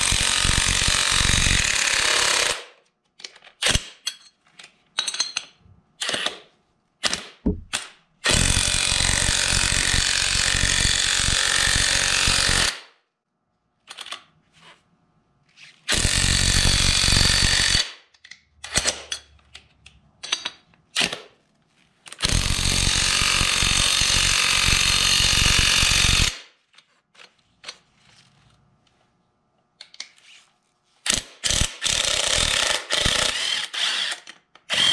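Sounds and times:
impact wrench hammering bolt: 7.1s - 7.9s.

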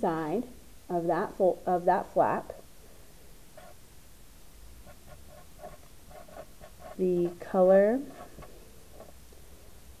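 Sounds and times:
marker squeaking on paper: 4.9s - 7.4s.

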